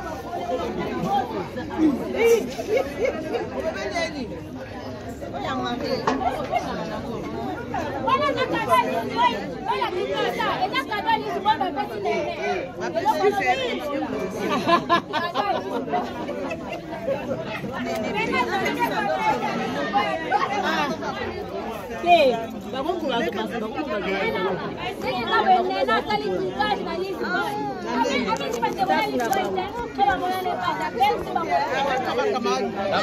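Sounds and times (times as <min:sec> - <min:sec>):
group of people chattering: 0:00.0 - 0:33.0.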